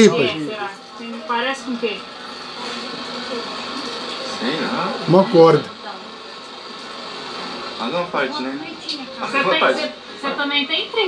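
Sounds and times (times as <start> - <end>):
person speaking: 5.1 - 5.7.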